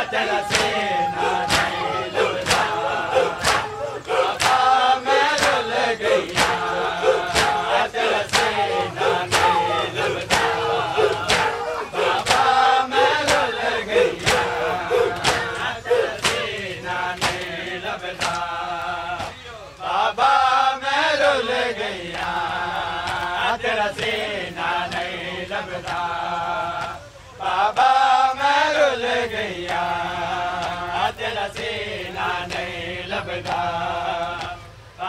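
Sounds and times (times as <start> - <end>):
men chanting in unison: 0.0 - 35.0
hands slapping chests: 0.4 - 5.6, 6.3 - 12.6, 13.2 - 13.5, 14.2 - 16.6, 17.2 - 17.5.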